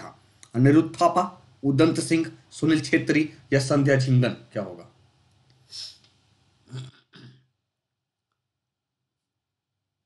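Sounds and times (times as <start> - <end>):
man clearing his throat: 6.7 - 7.5.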